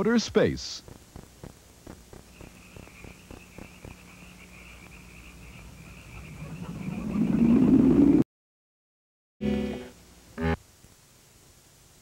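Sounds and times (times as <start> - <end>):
faint hum: 0.0 - 8.2, 9.4 - 12.0
high chirring night insects: 0.8 - 7.4.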